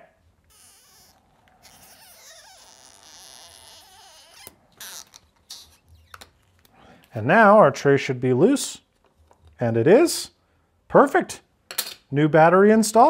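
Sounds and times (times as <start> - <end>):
faint squeaky rubbing: 0.4 - 6.6.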